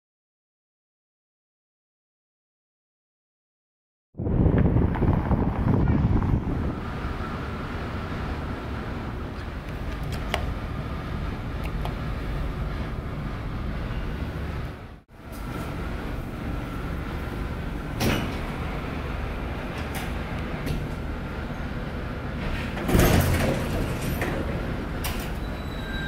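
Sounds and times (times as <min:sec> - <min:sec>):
low rumble of machinery: 0:04.2 - 0:26.0
elevator doors sliding open: 0:05.8 - 0:26.0.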